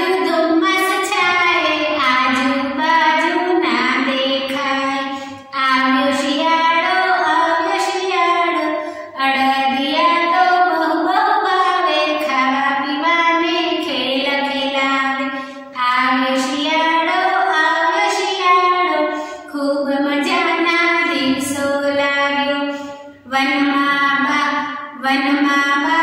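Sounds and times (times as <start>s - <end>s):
woman singing children's song: 0.0s - 26.0s.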